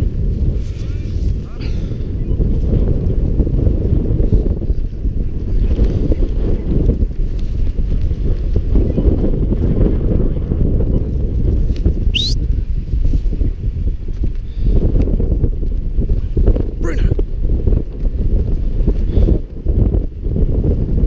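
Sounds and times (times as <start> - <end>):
wind buffeting microphone: 0.0 - 21.0
high upward-sweeping chirp: 12.1 - 12.4.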